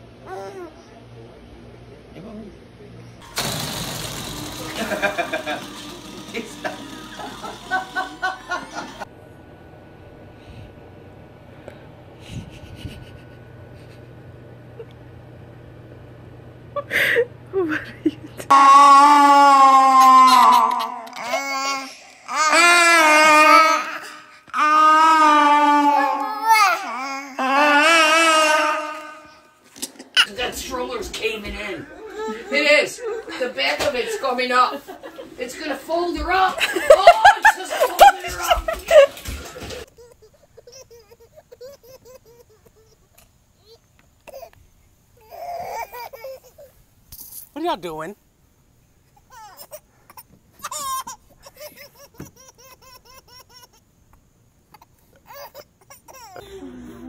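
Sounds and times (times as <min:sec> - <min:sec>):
baby crying into toy microphone: 0:18.5 - 0:29.4
baby laughing: 0:37.0 - 0:44.6, 0:45.4 - 0:46.7, 0:49.3 - 0:53.8, 0:54.7 - 0:56.4.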